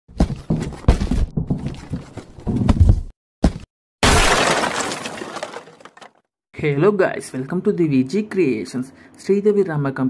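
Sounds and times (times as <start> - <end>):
glass shattering: 4.0 - 6.1
debris scattering: 4.0 - 6.2.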